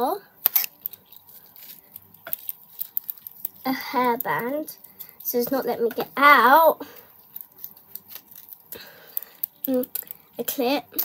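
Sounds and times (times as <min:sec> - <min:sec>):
packaging clicks and rustling: 0:00.4 - 0:06.2, 0:06.8 - 0:10.3.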